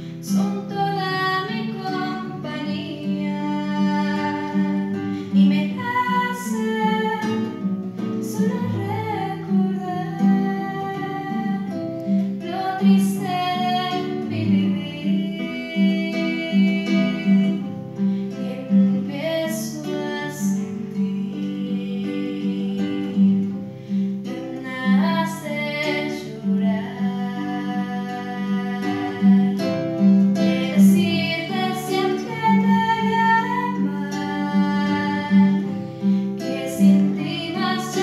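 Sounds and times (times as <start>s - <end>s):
acoustic guitar: 0.0s - 38.0s
girl singing a ballad: 0.0s - 38.0s.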